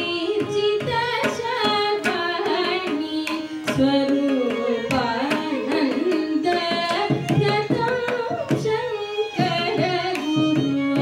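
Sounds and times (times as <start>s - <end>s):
violin: 0.0s - 11.0s.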